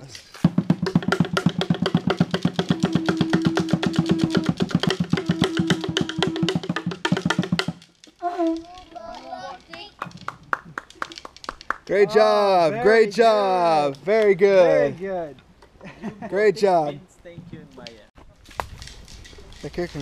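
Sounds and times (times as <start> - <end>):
fast drumbeat: 0.4 - 7.8
conch shell trumpet notes: 2.0 - 7.4, 8.2 - 8.7.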